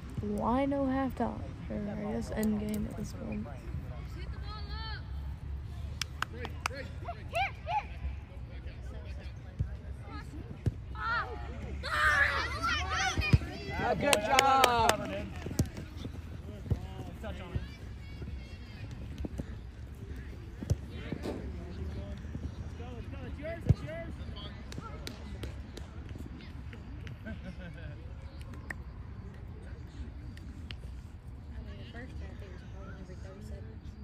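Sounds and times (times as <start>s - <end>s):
distant voices of players: 0.0s - 34.0s
soccer ball being kicked: 13.0s - 14.1s, 15.0s - 19.6s, 20.2s - 21.4s.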